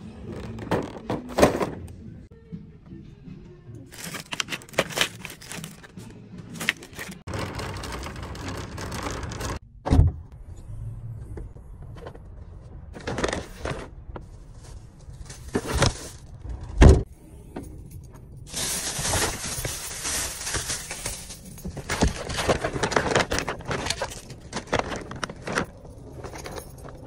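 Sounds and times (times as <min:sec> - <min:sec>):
plastic bags crinkling: 0:03.9 - 0:05.9, 0:18.5 - 0:26.1
cart wheels rolling over asphalt: 0:07.3 - 0:09.6.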